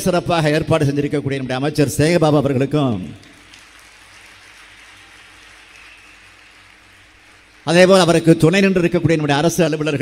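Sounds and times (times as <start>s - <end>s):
audience applause: 3.3s - 8.2s.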